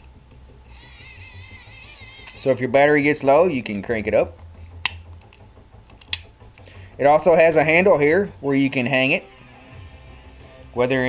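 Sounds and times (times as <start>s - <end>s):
sharp plastic clicks: 4.8s - 6.3s.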